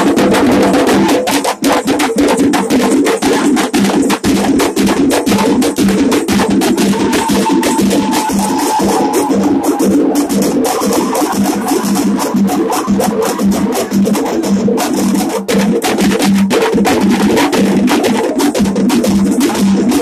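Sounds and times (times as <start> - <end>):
loud music with fast drumming: 0.0 - 20.0.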